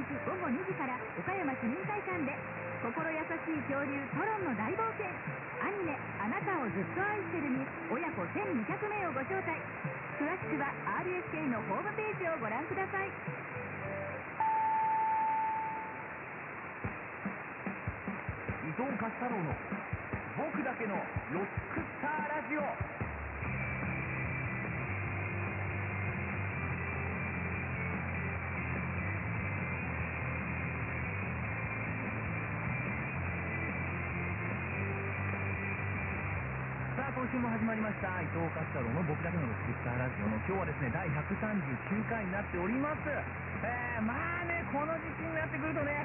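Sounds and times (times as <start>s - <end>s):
radio reception hiss: 0.0s - 46.0s
radio time signal beeps: 14.0s - 16.1s.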